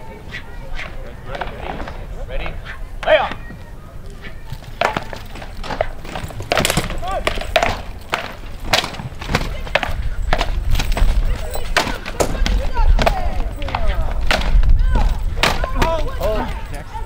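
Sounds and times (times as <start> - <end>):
onlookers talking: 0.0 - 17.0
weapons knocking on shields: 4.8 - 16.0.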